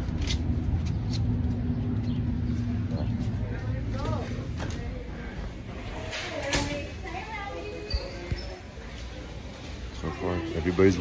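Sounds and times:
indistinct voices: 1.8 - 11.0.

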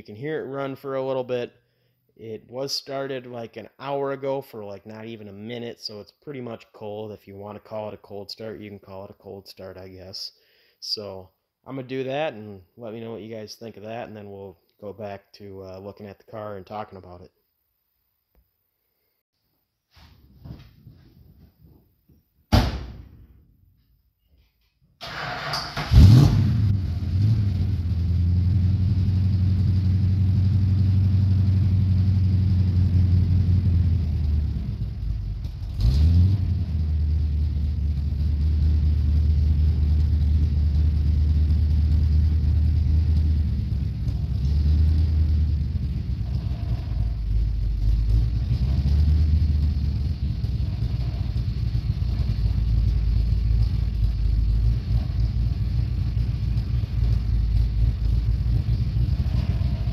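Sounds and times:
car engine cranking and starting: 25.0 - 59.9.

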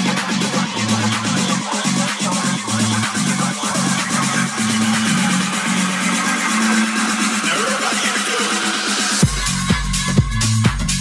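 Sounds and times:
hi-hat-like percussion: 0.0 - 11.0.

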